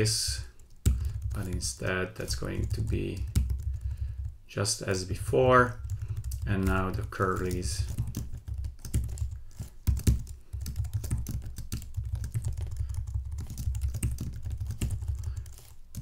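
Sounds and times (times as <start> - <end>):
computer keyboard typing: 0.3 - 4.4, 5.1 - 16.0.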